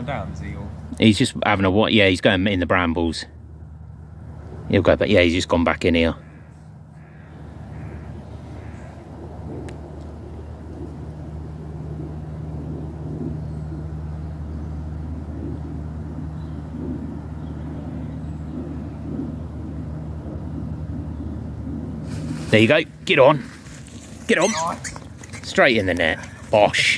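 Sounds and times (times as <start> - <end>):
distant engine humming: 0.0 - 26.9
faint outdoor background noise: 0.0 - 26.9.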